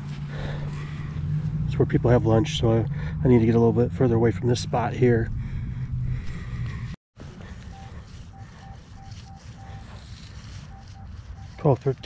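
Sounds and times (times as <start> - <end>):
low steady rumble: 0.0 - 12.0
metal detector short beeps: 7.7 - 12.0.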